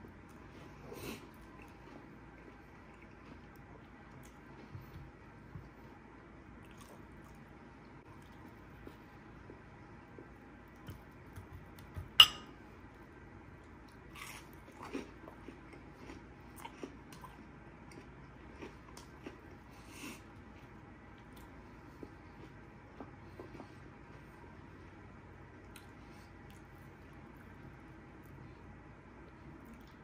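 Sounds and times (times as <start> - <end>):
chewing crunchy food: 0.1 - 5.8, 6.6 - 12.2, 13.6 - 24.8.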